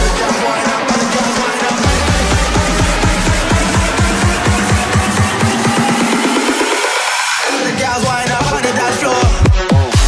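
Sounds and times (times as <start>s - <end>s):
electronic dance music: 0.0s - 10.0s
rising filter sweep: 1.8s - 7.4s.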